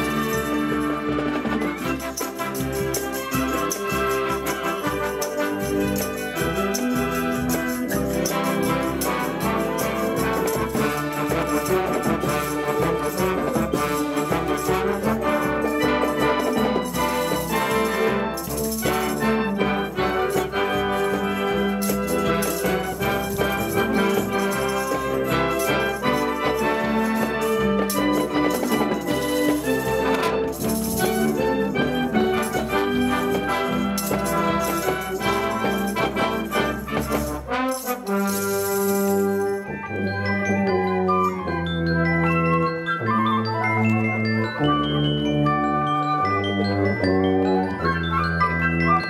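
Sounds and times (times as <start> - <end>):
drums: 0.0 - 39.8
tambourines: 0.0 - 41.0
brass chords: 0.0 - 49.0
marching band playing: 0.0 - 49.0
shimmering high percussion: 0.0 - 49.0.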